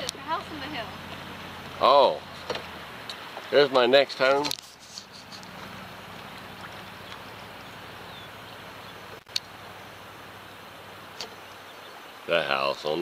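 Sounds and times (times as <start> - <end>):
river water flowing: 0.0 - 13.0
wind: 0.0 - 13.0.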